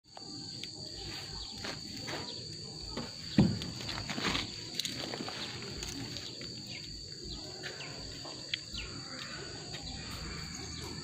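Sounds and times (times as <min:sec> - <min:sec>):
high-pitched insect drone: 0:00.1 - 0:11.0.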